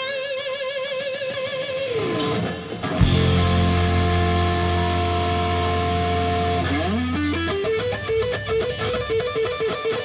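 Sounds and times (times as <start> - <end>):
blues-rock band playing: 0.0 - 10.0
electric guitar slide and run: 0.0 - 10.0.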